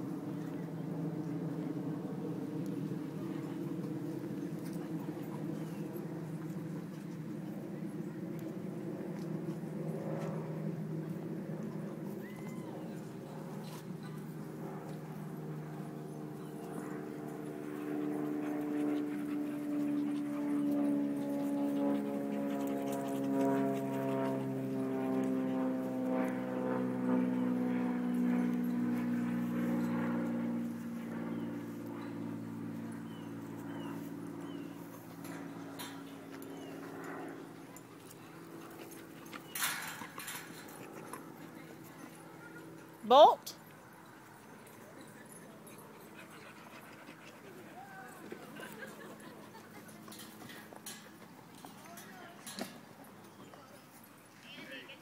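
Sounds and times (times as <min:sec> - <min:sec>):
low mechanical hum: 0:00.0 - 0:55.0
dog panting: 0:17.6 - 0:24.6, 0:37.4 - 0:42.4, 0:45.0 - 0:50.7.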